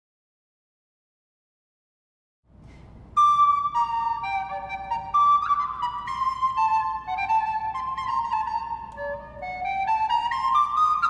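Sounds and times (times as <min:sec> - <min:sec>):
recorder melody: 0:03.2 - 0:11.0.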